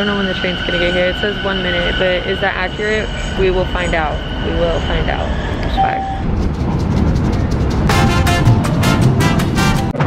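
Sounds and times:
subway train rumble: 0:00.0 - 0:10.0
brass swing music: 0:07.8 - 0:10.0.

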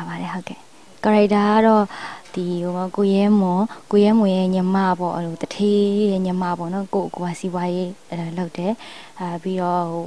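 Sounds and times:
woman speaking into microphone: 0:00.0 - 0:10.0.

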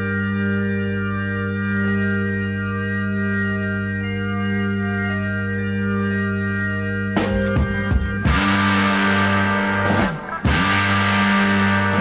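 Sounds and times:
organ playing pop intro: 0:06.0 - 0:12.0.

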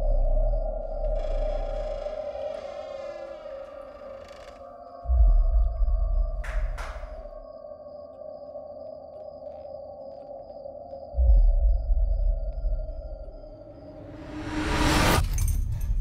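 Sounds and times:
eerie drone tone: 0:00.0 - 0:16.0
sharp claps: 0:06.4 - 0:07.2.

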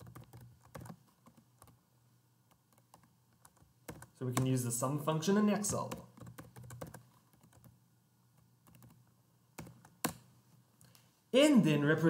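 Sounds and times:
keyboard typing: 0:00.0 - 0:01.8, 0:02.5 - 0:04.6, 0:05.6 - 0:07.8, 0:08.4 - 0:10.3.

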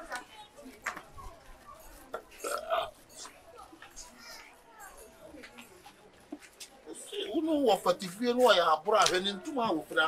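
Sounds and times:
man burping: 0:02.4 - 0:02.9.

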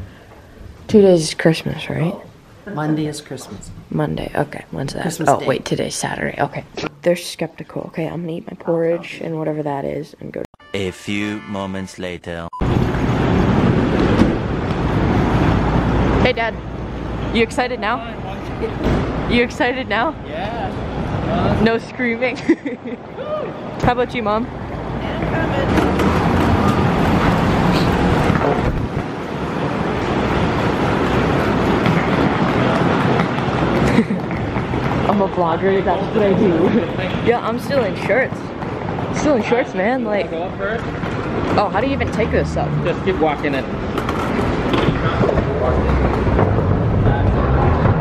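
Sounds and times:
wheeled suitcase rolling: 0:25.1 - 0:37.2.

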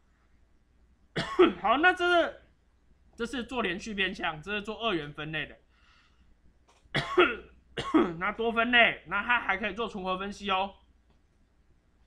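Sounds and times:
man coughing: 0:01.2 - 0:01.6, 0:07.0 - 0:08.2.

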